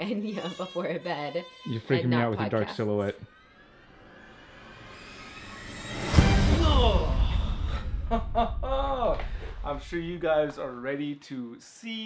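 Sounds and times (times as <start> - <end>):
person speaking: 1.7 - 3.3
rising tones transition riser: 3.4 - 8.3.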